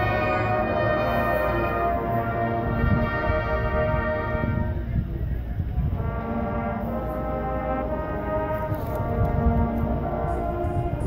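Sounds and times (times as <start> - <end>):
brass playing sustained chords: 0.0 - 11.0.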